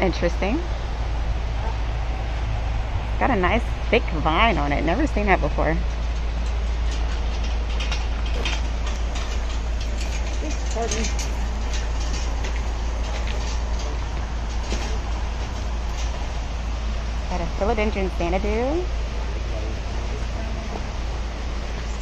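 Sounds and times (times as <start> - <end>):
deep low hum: 0.0 - 22.0
loud rumbling: 0.0 - 22.0
faint voices: 9.9 - 16.3, 17.2 - 22.0.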